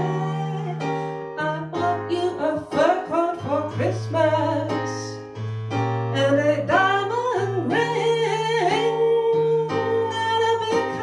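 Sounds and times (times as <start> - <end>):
woman singing jazz ballad: 0.0 - 5.3, 6.1 - 11.0
keyboard chords: 0.0 - 11.0.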